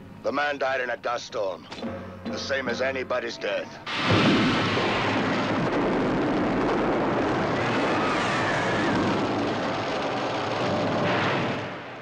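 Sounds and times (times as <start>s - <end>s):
fire and destruction roar: 3.9s - 12.0s.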